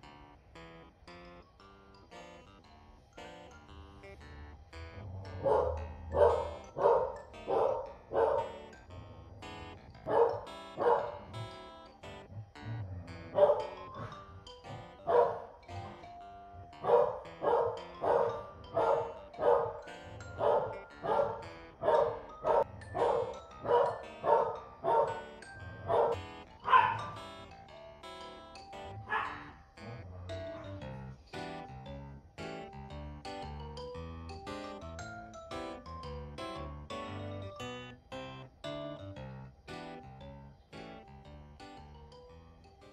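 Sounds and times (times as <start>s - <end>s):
dog barking: 5.4s - 8.6s, 10.0s - 11.4s, 13.3s - 14.1s, 15.1s - 15.5s, 16.8s - 19.8s, 20.4s - 27.2s, 29.0s - 29.6s.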